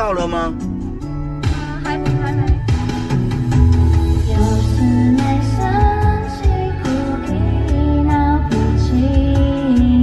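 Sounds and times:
karaoke pop backing track: 0.0s - 10.0s.

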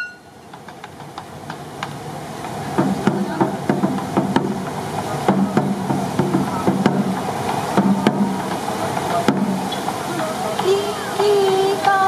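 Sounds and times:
small drums struck in steady beat: 0.0s - 12.0s.

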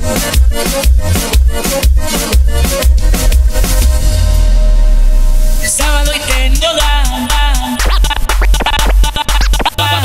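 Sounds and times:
banda music mix: 0.0s - 10.0s
dj scratching: 5.6s - 10.0s.

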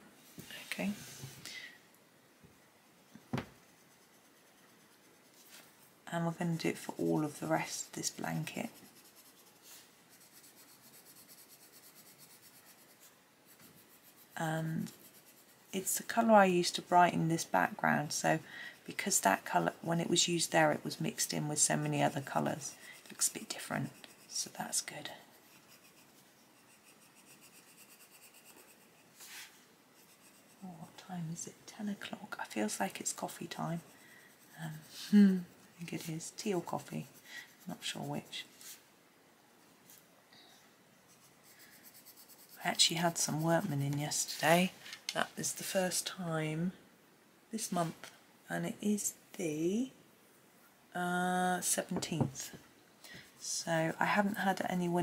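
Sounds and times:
pencil tapping on paper: 3.3s - 3.6s
pencil scratching on paper: 3.3s - 5.7s, 6.4s - 18.2s, 18.9s - 31.0s, 32.4s - 38.8s, 41.1s - 44.4s
faint rustle: 28.3s - 31.1s.

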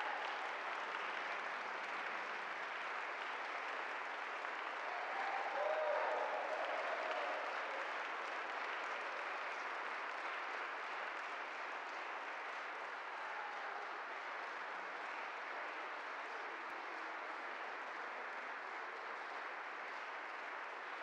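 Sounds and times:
audience applauding: 0.0s - 21.0s.

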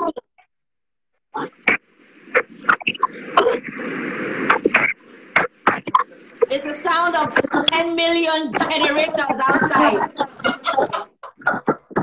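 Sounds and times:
garbled speech: 0.0s - 0.2s, 5.7s - 12.0s
crackles: 1.3s - 12.0s.

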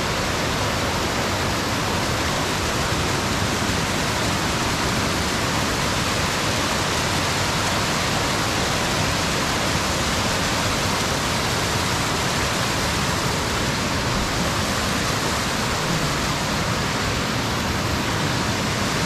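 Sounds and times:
creek rushing over rocks: 0.0s - 19.0s.

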